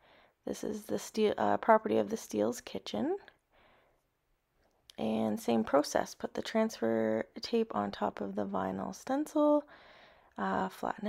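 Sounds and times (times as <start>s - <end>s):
person speaking: 4.9s - 9.7s.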